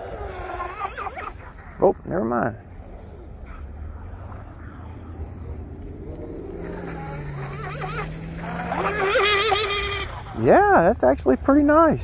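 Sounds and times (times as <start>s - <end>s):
rc boat motor running: 0.0s - 11.8s
steady low rumble: 1.3s - 8.6s.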